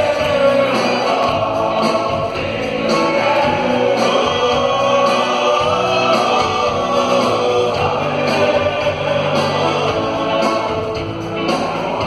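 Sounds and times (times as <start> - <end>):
live band playing: 0.0 - 12.0
men singing: 0.0 - 12.0.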